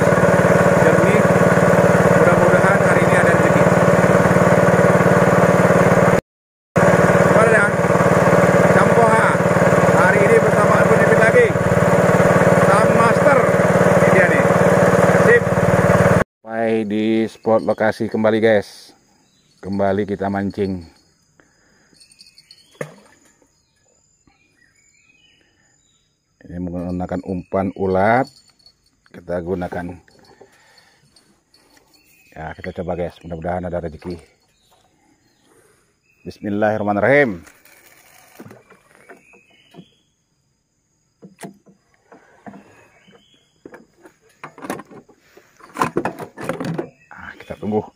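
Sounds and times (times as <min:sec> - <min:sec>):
insects buzzing: 0:16.5 - 0:47.9.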